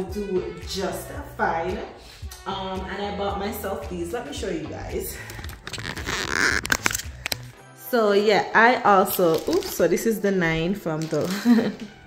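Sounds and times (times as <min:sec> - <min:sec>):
background music: 0:00.0 - 0:12.0
phone handling rustle: 0:05.4 - 0:07.4.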